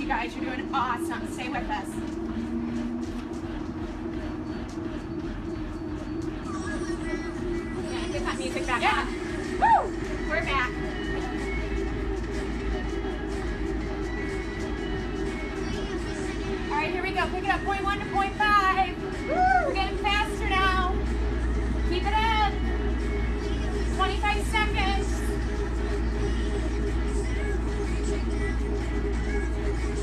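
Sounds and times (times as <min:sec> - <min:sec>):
background music: 0:00.0 - 0:30.0
treadmills humming: 0:00.0 - 0:30.0
running footfalls on treadmill: 0:00.1 - 0:06.4.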